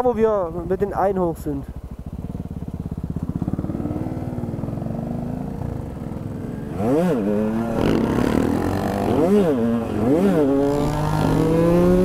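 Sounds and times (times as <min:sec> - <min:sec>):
motorcycle accelerating: 0:00.0 - 0:12.0.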